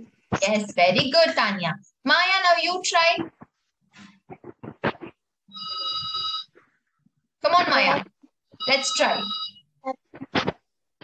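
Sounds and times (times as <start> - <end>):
faint clicks and taps: 3.0 - 5.2
electronic ringing tone: 5.5 - 6.5, 8.6 - 9.7.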